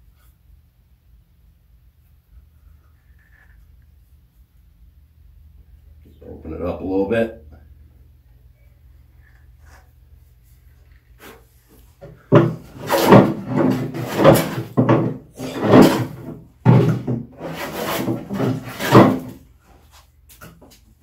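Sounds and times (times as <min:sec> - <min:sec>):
hand plane rasping along wood: 0:12.3 - 0:19.4.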